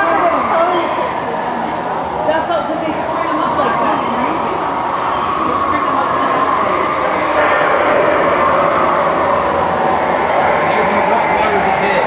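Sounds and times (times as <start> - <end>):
rushing rumbling boat ride: 0.0 - 12.0
voices: 0.0 - 12.0.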